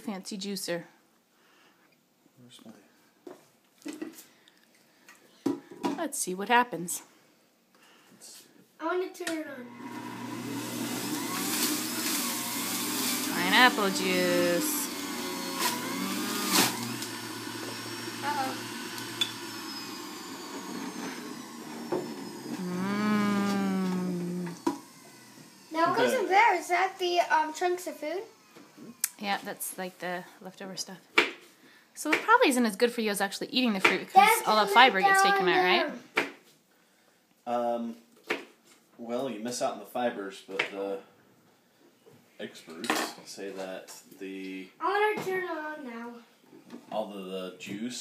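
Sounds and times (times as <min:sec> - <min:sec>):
juicer motor whining: 0:09.6 - 0:29.8.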